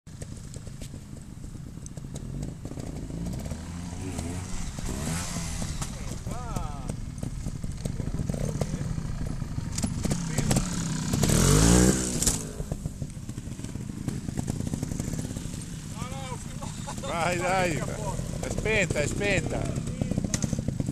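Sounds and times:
motorcycle engine revving: 0.1s - 20.9s.

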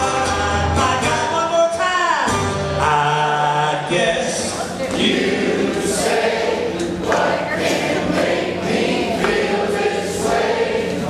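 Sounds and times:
group of voices singing: 2.8s - 11.0s.

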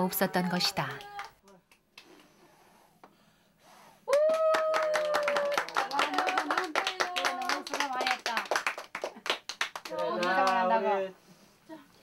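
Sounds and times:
person cheering: 4.1s - 7.9s
people applauding: 4.1s - 10.9s.

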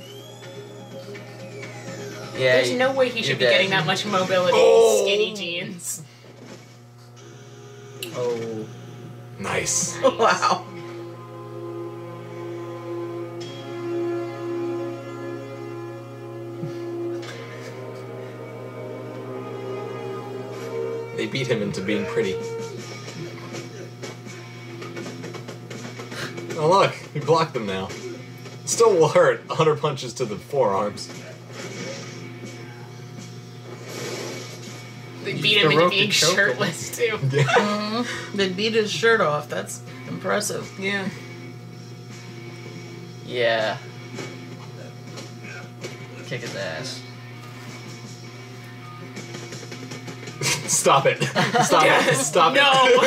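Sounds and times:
faint film soundtrack tones: 0.0s - 53.0s.

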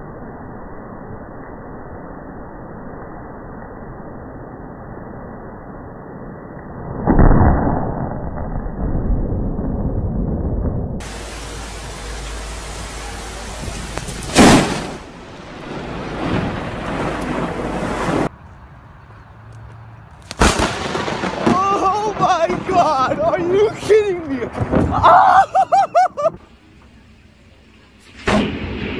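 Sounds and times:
thunder cracking and rumbling: 7.0s - 18.3s, 20.3s - 25.4s, 26.2s - 28.9s
person's voice: 21.5s - 25.3s.

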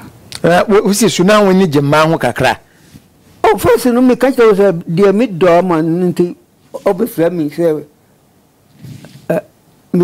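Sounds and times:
man speaking: 0.4s - 2.7s, 3.4s - 7.9s.

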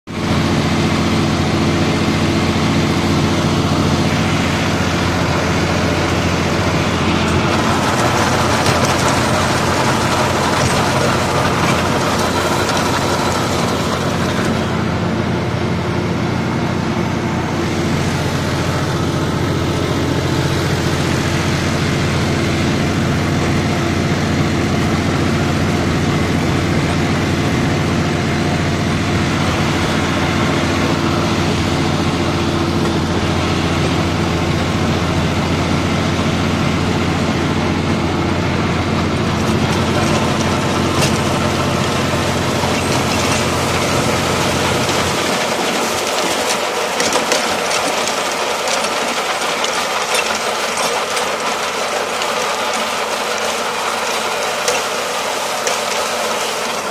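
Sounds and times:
tractor diesel engine running: 0.0s - 56.9s.

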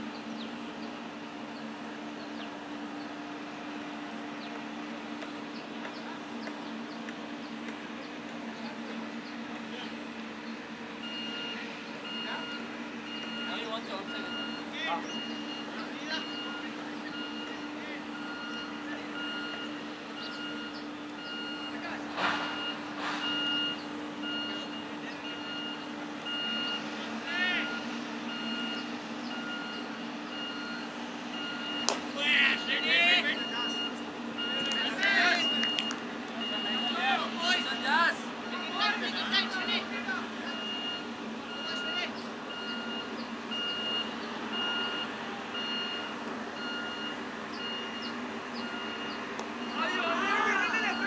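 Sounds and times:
repeating electronic beep: 11.0s - 17.6s, 27.5s - 39.8s
players shouting: 27.0s - 27.9s, 31.9s - 35.8s, 36.4s - 40.9s, 49.6s - 51.0s.

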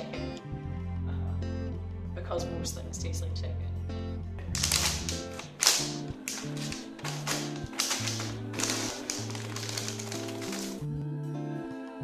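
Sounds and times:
plastic bag crinkling: 4.6s - 10.8s.

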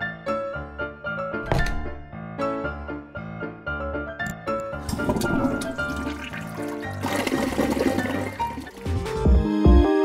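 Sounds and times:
background music: 0.0s - 10.0s
toilet flushing: 4.8s - 9.3s.

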